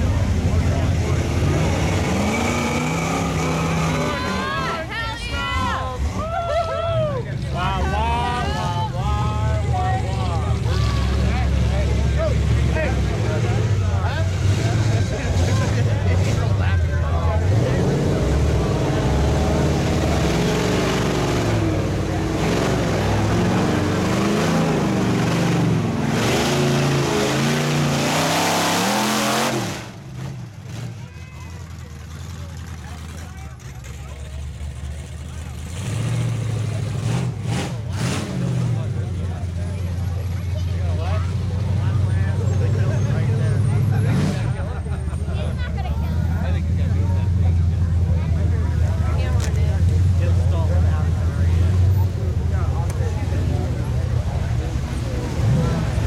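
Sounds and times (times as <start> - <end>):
pickup truck engine revving: 0.0 - 4.9, 7.6 - 45.4, 46.0 - 56.0
onlookers chattering: 0.0 - 56.0
truck engine running under load: 28.9 - 56.0.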